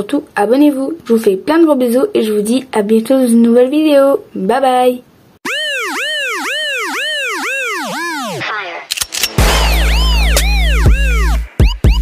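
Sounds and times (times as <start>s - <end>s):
electronic tone swooping: 5.4s - 8.5s.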